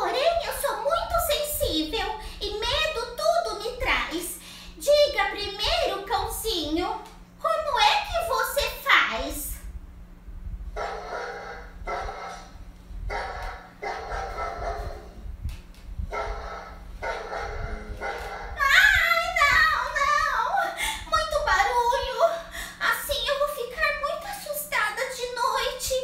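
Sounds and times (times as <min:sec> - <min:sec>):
woman's excited high voice: 0:18.6 - 0:26.0.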